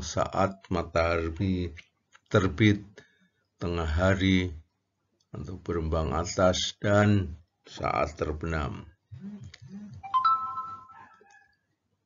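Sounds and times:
bright chime: 10.0s - 11.1s.

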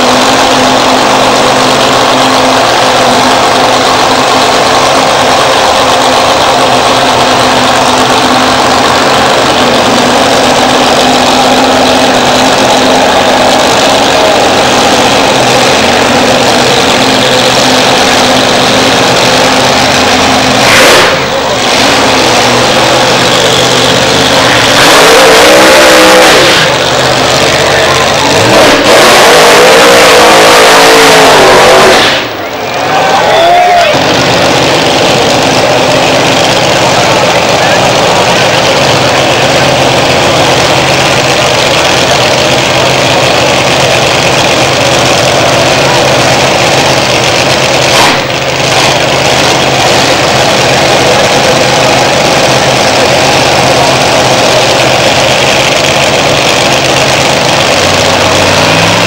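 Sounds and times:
drag racing engines revving: 0.0s - 59.0s.

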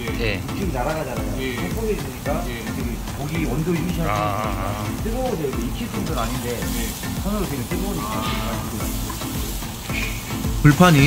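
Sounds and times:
pork sizzling on a grill: 0.0s - 11.0s
metal tongs turning meat: 5.3s - 11.0s.

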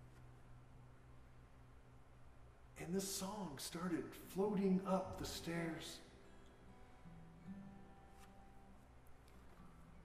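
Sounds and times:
soft acoustic guitar notes: 3.2s - 10.0s.

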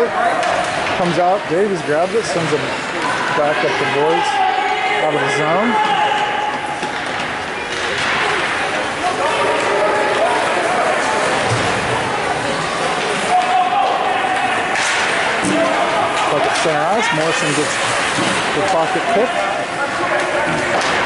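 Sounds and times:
steady crowd din: 0.0s - 21.0s
puck and sticks knocking boards: 0.3s - 1.2s, 5.8s - 8.8s, 14.4s - 19.3s, 20.0s - 21.0s
spectators shouting: 2.7s - 21.0s.

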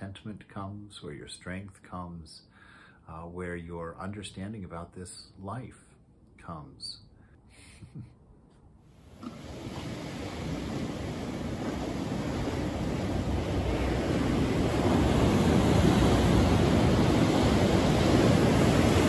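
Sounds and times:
breaking waves: 9.1s - 19.0s.

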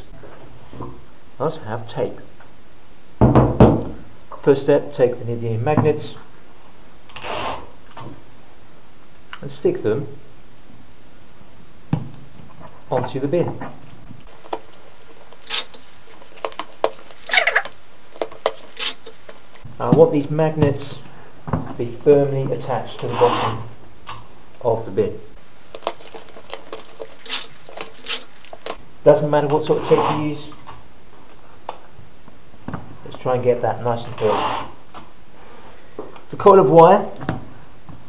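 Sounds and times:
background hiss: 0.0s - 38.0s
sticky tape pulled from dispenser: 15.4s - 15.8s, 18.7s - 19.1s, 27.2s - 28.6s.

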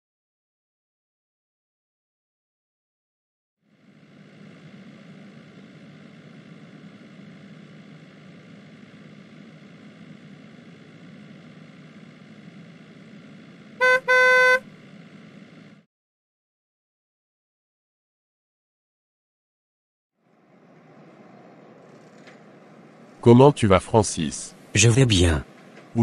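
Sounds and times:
car horn honking: 13.8s - 14.6s
low car rumble: 20.2s - 23.6s.

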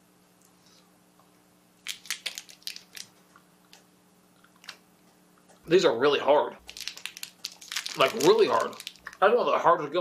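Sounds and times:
teeth crunching hard gumball: 1.8s - 3.1s, 6.6s - 9.2s.

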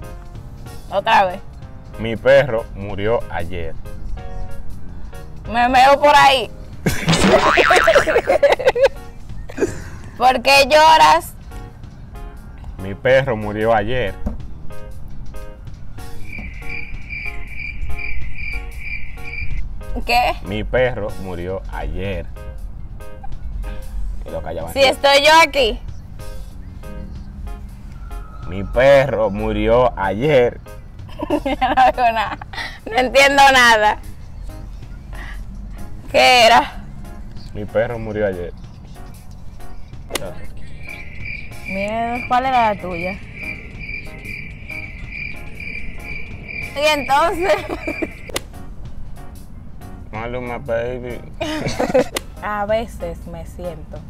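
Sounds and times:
faint music with regular beat: 0.0s - 54.0s
insect chirping: 16.0s - 19.7s, 39.7s - 48.4s.

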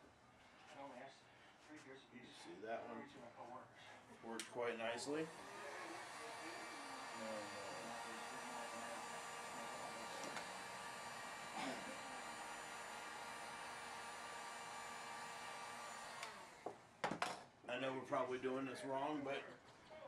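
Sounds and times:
heat gun blowing air: 5.3s - 16.7s.

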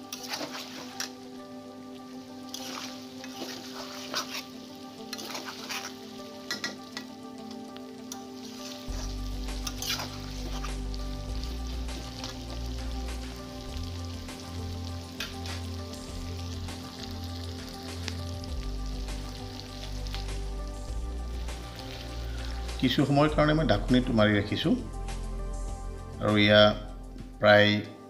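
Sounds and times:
spatula stirring: 0.0s - 1.2s, 2.5s - 7.1s, 8.1s - 13.4s
meat sizzling in a pan: 0.0s - 26.0s
background music with bass: 8.8s - 27.8s.

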